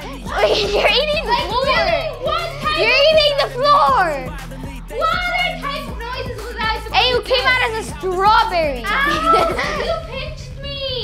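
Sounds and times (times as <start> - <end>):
background music: 0.0 - 11.0
children's voices: 0.0 - 11.0.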